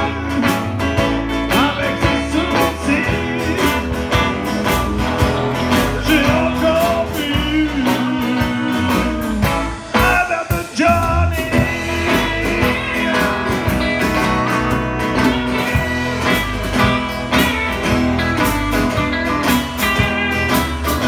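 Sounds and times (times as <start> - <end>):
bending guitar lines: 0.0 - 21.0
drum kit steady beat: 0.0 - 21.0
live band playing: 0.0 - 21.0.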